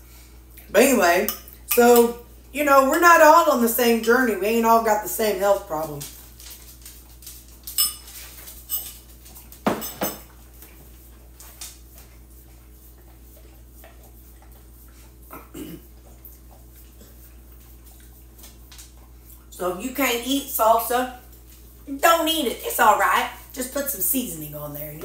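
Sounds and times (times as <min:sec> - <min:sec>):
metal spoon clinking ceramic bowl: 0:07.8 - 0:09.0
bowl set down on countertop: 0:09.6 - 0:10.3.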